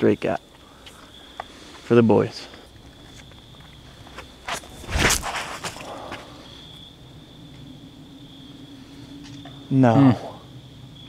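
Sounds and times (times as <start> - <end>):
footsteps on pavement: 0.4 - 6.4.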